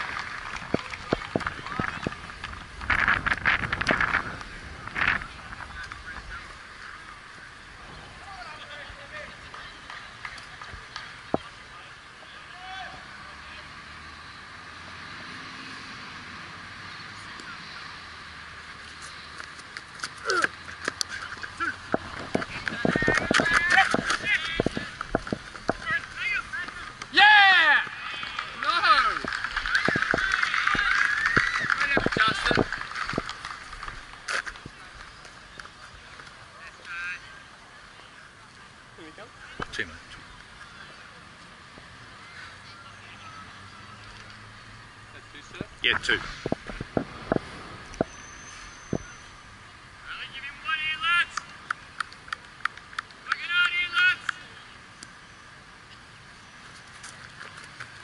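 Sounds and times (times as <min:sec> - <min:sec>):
players shouting: 0:21.4 - 0:33.1, 0:53.2 - 0:54.6.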